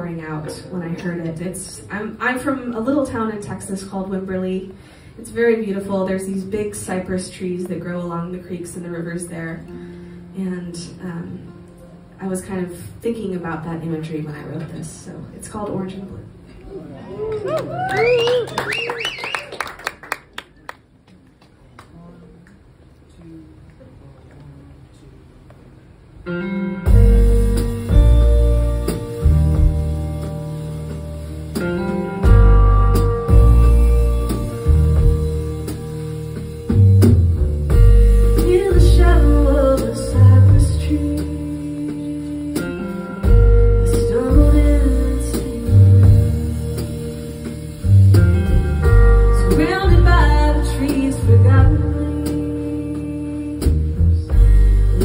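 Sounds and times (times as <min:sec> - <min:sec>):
scattered handclaps: 0:17.9 - 0:20.9
amplified guitar chords: 0:26.2 - 0:55.0
deep bass guitar notes: 0:26.3 - 0:55.0
woman singing slow song: 0:38.3 - 0:47.1, 0:49.2 - 0:55.0.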